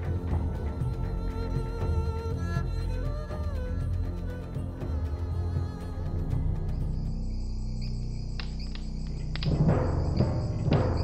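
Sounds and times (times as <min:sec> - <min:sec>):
low music drone: 0:00.0 - 0:11.0
crickets chirping: 0:00.1 - 0:11.0.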